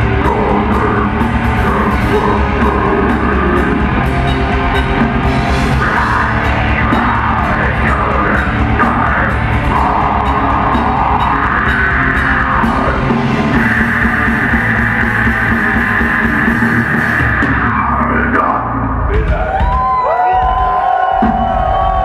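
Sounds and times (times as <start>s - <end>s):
heavy metal band playing live: 0.0s - 22.0s.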